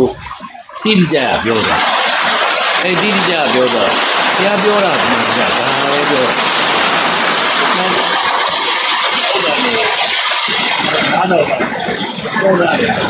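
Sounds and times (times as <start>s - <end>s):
man preaching: 0.8s - 1.8s, 2.8s - 6.4s
loud steady hiss: 0.9s - 11.7s.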